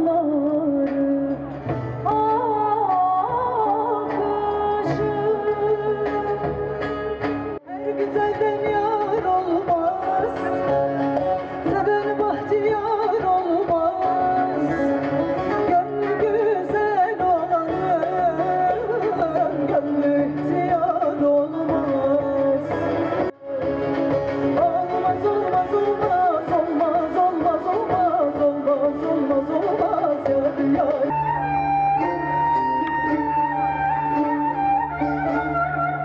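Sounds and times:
music with long held notes: 0.0s - 36.0s
saz and guitar ensemble: 0.0s - 36.0s
woman singing folk song: 0.0s - 36.0s.

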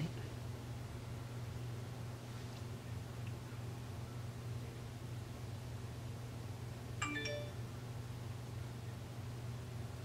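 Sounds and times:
steady low hum: 0.0s - 10.0s
rising three-note chime: 7.0s - 7.6s.

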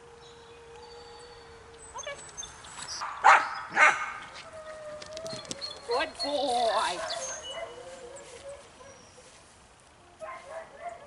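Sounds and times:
dog barking: 3.0s - 4.2s, 6.9s - 7.8s, 10.2s - 11.0s.

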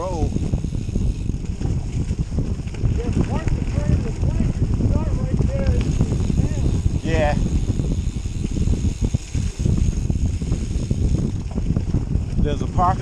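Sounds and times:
bike tyres rumbling on dirt trail: 0.0s - 13.0s
wind noise on microphone: 0.0s - 13.0s.

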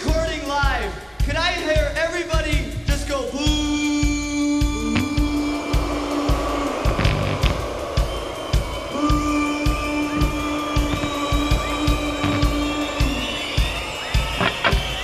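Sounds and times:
kick drum beat: 6.8s - 15.0s
distorted guitars and bass: 6.9s - 7.6s, 10.9s - 12.8s, 14.4s - 15.0s.

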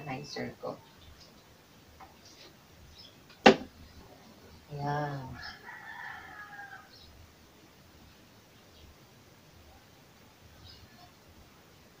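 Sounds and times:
rooster crowing: 5.4s - 7.0s.

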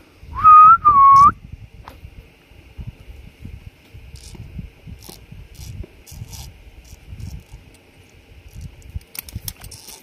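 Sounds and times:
person whistling: 0.4s - 1.4s.

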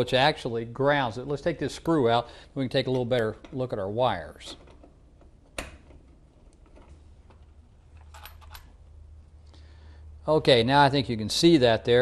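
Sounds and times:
low steady hum: 0.0s - 12.0s.

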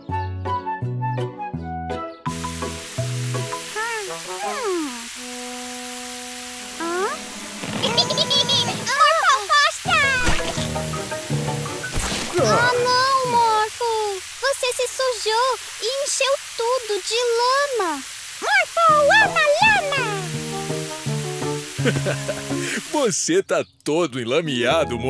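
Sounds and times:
water spraying from garden hose: 2.3s - 23.2s
cartoon character vocal noises: 3.8s - 5.1s, 6.8s - 7.2s, 7.8s - 10.6s, 12.3s - 14.2s, 17.4s - 20.3s.

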